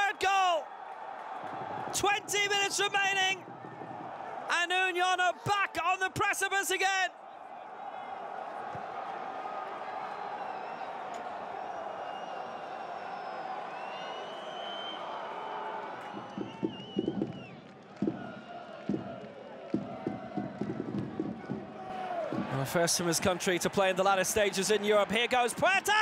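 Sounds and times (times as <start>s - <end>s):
crowd shouts: 0.0s - 26.0s
stadium crowd roar: 0.0s - 26.0s.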